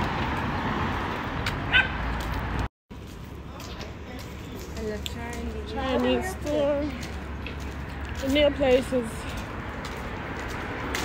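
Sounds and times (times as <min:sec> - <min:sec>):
street noise: 0:00.0 - 0:11.0.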